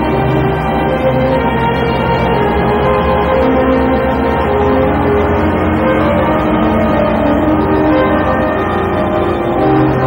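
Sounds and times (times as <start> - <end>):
soundtrack music with held notes: 0.0 - 10.0.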